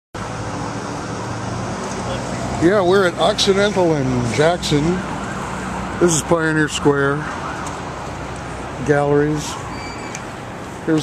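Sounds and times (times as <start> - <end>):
street traffic: 0.2 - 11.0.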